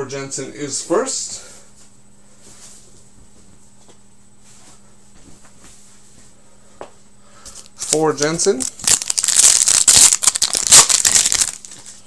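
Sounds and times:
foil wrapper crinkling: 7.8 - 12.0.

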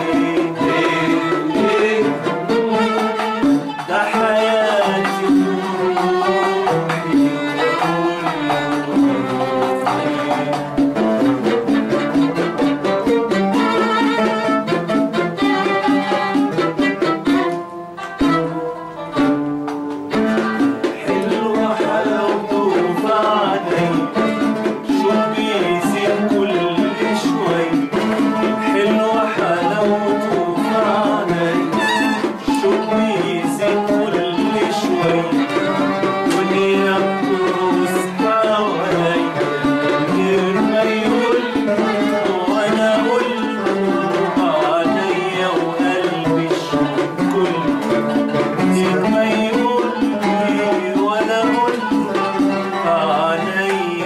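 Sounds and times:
man singing: 0.0 - 17.4, 20.1 - 54.0
instrumental ensemble music: 0.0 - 54.0
violin melody: 0.0 - 54.0.

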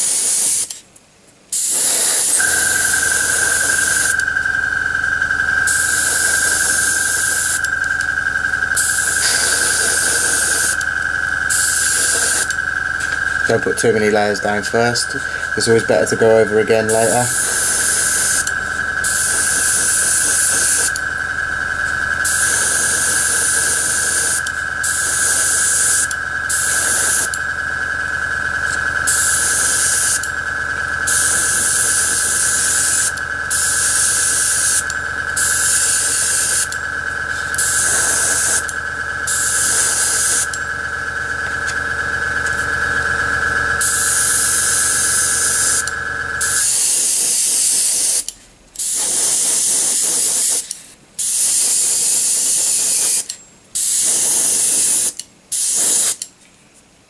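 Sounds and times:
airbrush spraying hiss: 0.0 - 0.8, 1.5 - 4.3, 5.6 - 7.7, 8.7 - 10.8, 11.5 - 13.3, 13.9 - 21.0, 22.2 - 27.3, 29.1 - 30.2, 31.1 - 34.8, 35.4 - 36.7, 37.3 - 38.7, 39.3 - 40.5, 43.8 - 45.8, 46.4 - 56.2
air compressor humming with whine: 0.0 - 57.0.

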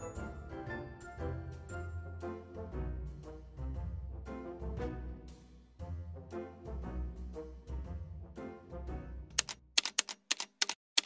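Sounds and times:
background music: 0.0 - 9.5
typewriter key clicks: 9.3 - 11.0.

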